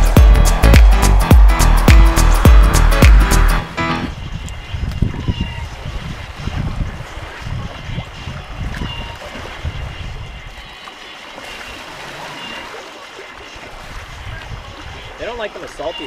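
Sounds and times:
low wind gusts: 0.0s - 10.8s
water rushing along wooden hull: 0.0s - 16.0s.

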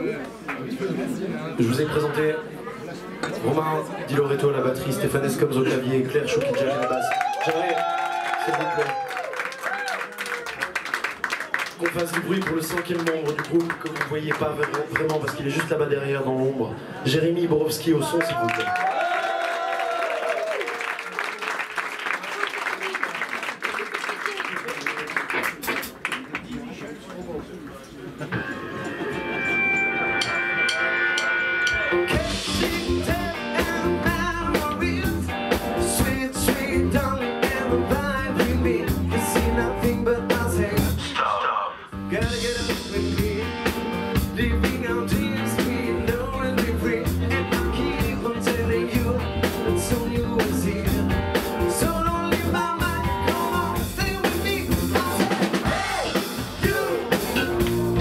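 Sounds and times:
electric guitar: 28.3s - 41.2s, 42.0s - 58.0s
drum kit: 29.6s - 41.1s, 42.0s - 58.0s
electric bass: 31.7s - 41.1s, 42.0s - 58.0s.

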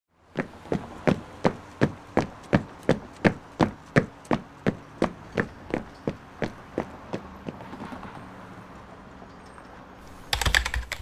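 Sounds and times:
computer keyboard typing: 10.1s - 11.0s.

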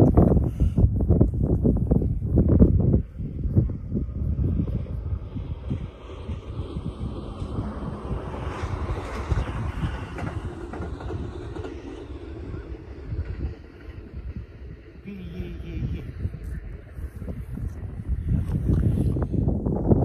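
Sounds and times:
distant electric train rolling: 0.0s - 20.0s
wind buffeting microphone: 0.0s - 20.0s.

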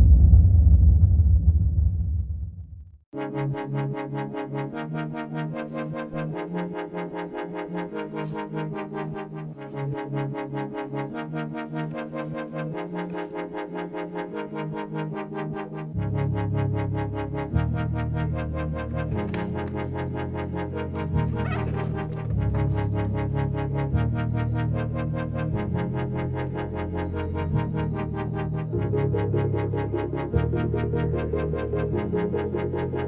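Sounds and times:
heavy bass line: 0.0s - 3.0s
electronic music with synthesizer: 3.2s - 33.0s.

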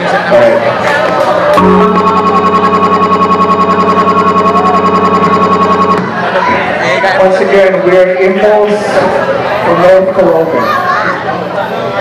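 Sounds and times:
band chord with tremolo: 1.6s - 6.3s.

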